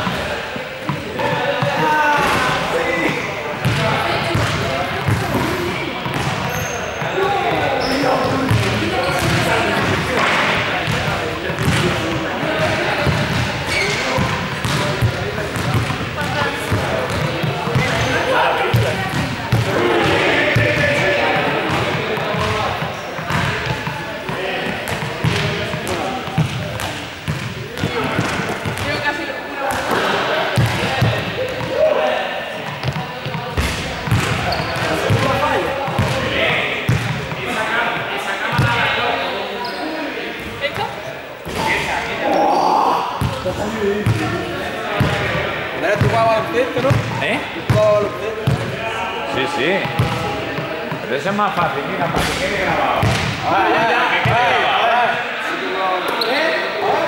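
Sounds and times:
ball bouncing on hall floor: 0.0s - 21.0s, 21.6s - 31.9s, 32.6s - 37.5s, 49.8s - 53.4s
indistinct chatter of voices: 0.0s - 57.0s.

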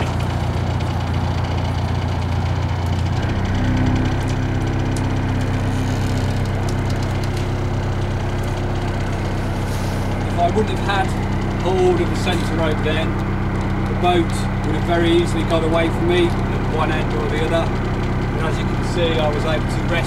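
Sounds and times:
diesel boat engine running: 0.0s - 20.0s.

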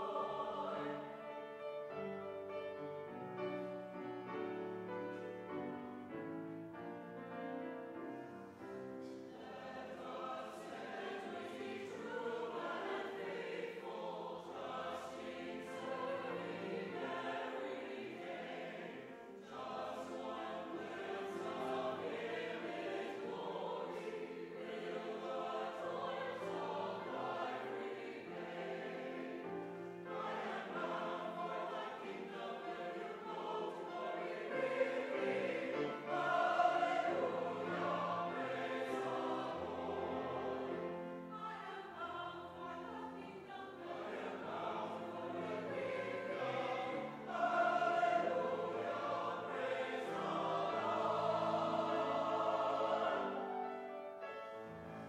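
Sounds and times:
church choir singing: 0.0s - 55.0s.

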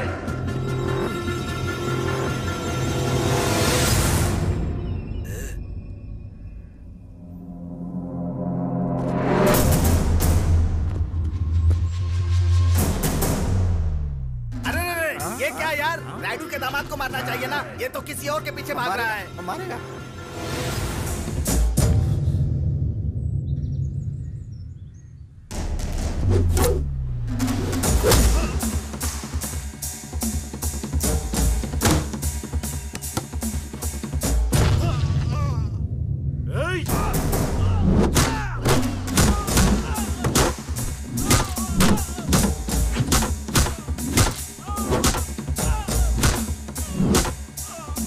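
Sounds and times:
action film score: 0.0s - 48.0s
deep bass: 21.7s - 29.0s
fight-scene score with drums: 25.5s - 36.1s, 36.7s - 48.0s.

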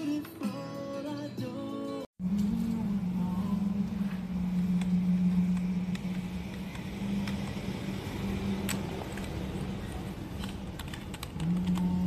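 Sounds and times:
steady low hum: 2.2s - 12.0s
mechanical keyboard key clicks: 10.4s - 12.0s.

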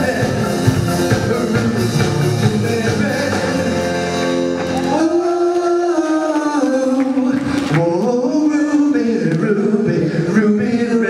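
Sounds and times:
band playing: 0.0s - 8.0s
man singing: 0.0s - 11.0s.

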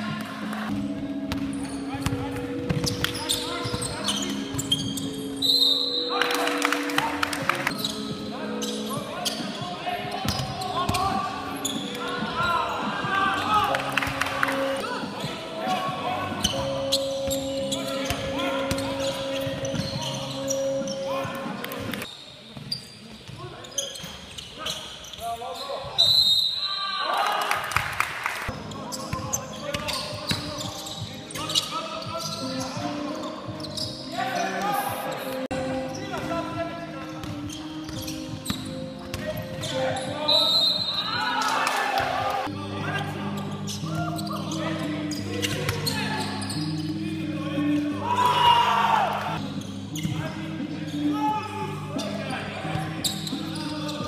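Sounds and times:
players shouting: 40.0s - 42.5s, 48.0s - 49.4s.

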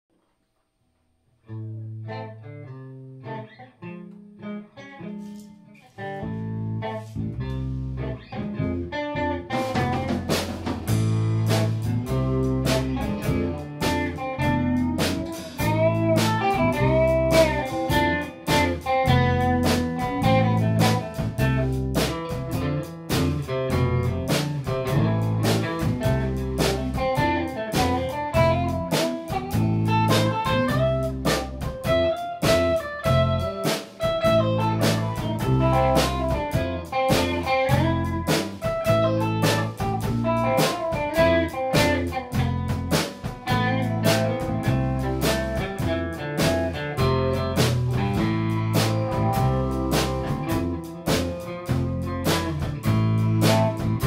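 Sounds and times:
guitar: 1.0s - 54.0s
bass guitar: 1.4s - 54.0s
drum kit: 6.0s - 54.0s.

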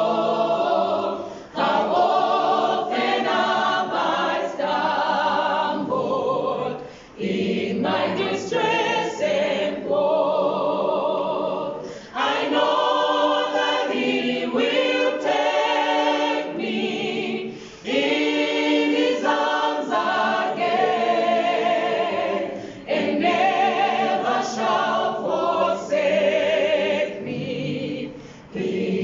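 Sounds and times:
choir singing a cappella: 0.0s - 29.0s.

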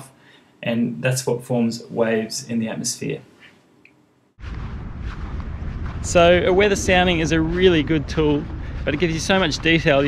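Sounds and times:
wind noise on microphone: 4.4s - 10.0s.

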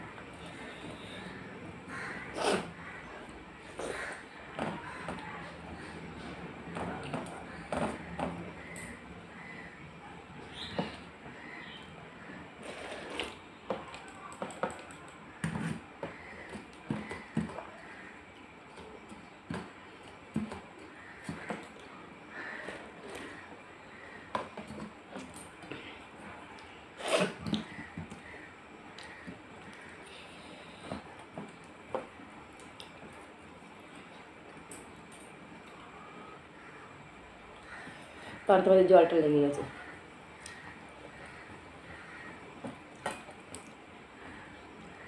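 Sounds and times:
slurping rice water: 27.0s - 28.4s.

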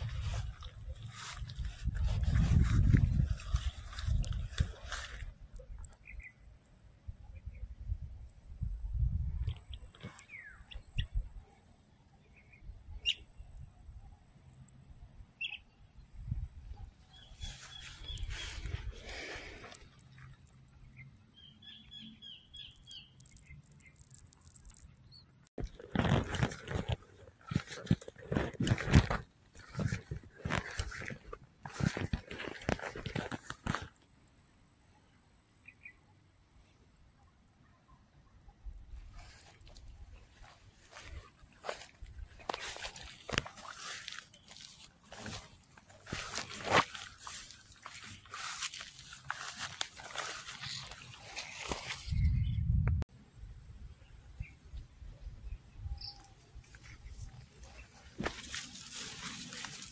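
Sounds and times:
wind noise on microphone: 0.0s - 5.3s, 7.4s - 10.1s, 25.6s - 33.9s, 51.6s - 57.4s
rustling: 25.6s - 33.9s, 40.8s - 52.1s, 57.6s - 59.9s.

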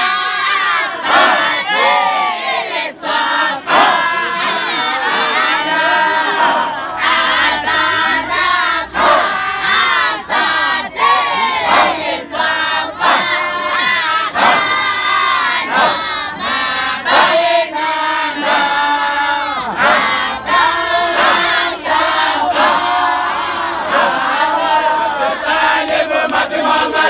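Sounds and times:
group chanting: 0.0s - 27.0s.

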